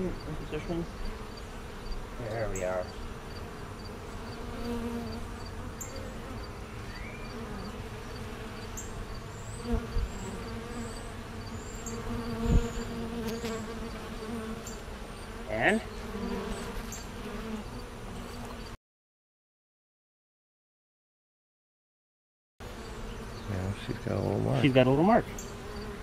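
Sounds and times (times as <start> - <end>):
honeybees buzzing: 0.0 - 18.8, 22.6 - 26.0.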